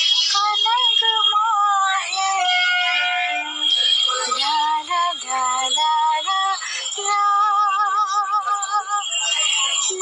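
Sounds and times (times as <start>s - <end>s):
woman singing with vibrato: 0.2s - 10.0s.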